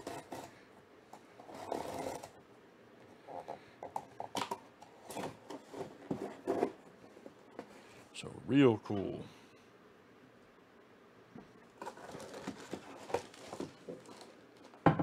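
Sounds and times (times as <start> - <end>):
cardboard scraping: 1.4 - 2.4, 11.8 - 14.4.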